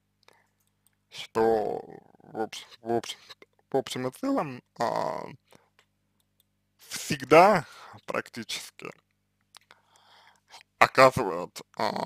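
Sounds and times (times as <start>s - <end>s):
faint soft noises: 0.2s - 12.0s
man talking: 1.1s - 5.4s, 6.8s - 9.0s, 10.6s - 12.0s.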